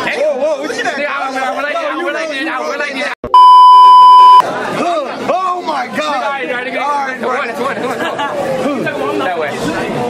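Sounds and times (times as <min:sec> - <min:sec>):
censor bleep: 0:03.3 - 0:04.4.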